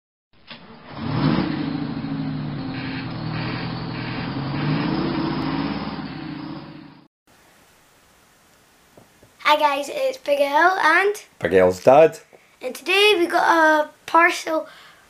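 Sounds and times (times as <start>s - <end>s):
lorry engine accelerating: 0.4s - 7.1s.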